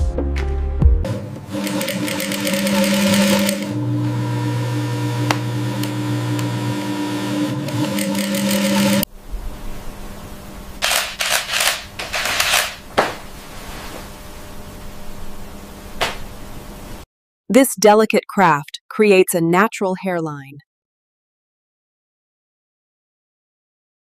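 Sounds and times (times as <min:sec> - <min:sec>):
sewing machine stitching: 0:01.5 - 0:03.8, 0:07.5 - 0:09.1, 0:10.8 - 0:12.8
short noisy bursts: 0:10.8 - 0:12.8.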